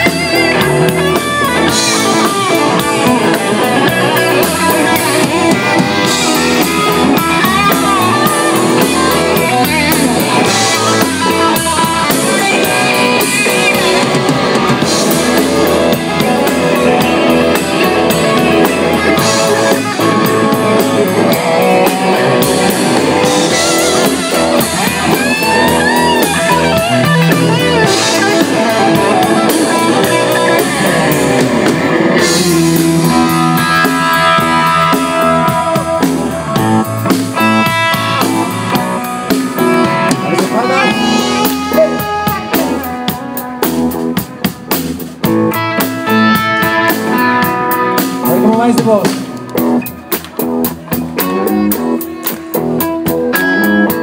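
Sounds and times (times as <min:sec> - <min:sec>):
drum kit: 0:00.0 - 0:54.0
electric guitars: 0:00.0 - 0:54.0.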